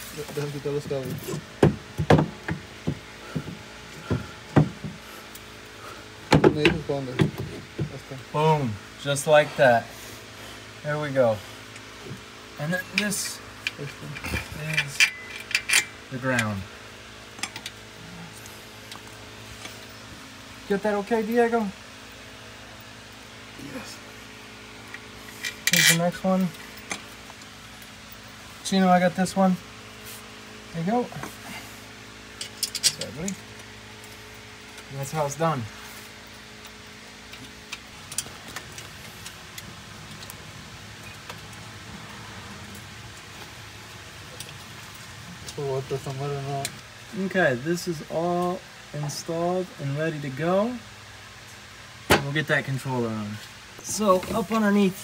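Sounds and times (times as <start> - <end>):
metallic clicks and clinks of tools: 12.9 - 16.5, 32.4 - 33.2.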